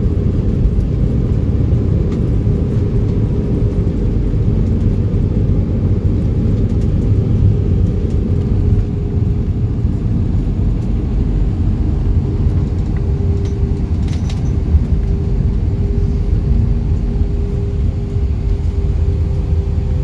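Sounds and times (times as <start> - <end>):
jet engines low rumble: 0.0 - 20.0
steady hum: 0.0 - 20.0.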